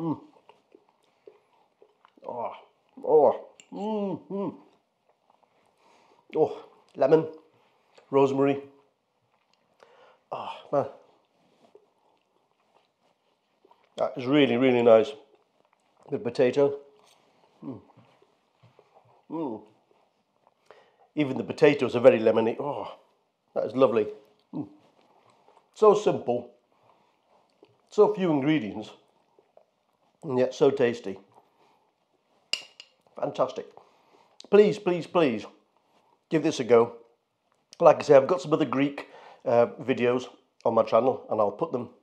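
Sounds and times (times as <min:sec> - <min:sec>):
soft chewing mouth clicks: 0:00.0 - 0:08.1, 0:08.7 - 0:14.2, 0:15.1 - 0:21.2, 0:24.0 - 0:25.8, 0:26.5 - 0:27.9, 0:28.9 - 0:30.3, 0:31.2 - 0:34.6, 0:37.0 - 0:37.8
fork clinking on china plate: 0:32.6 - 0:33.0.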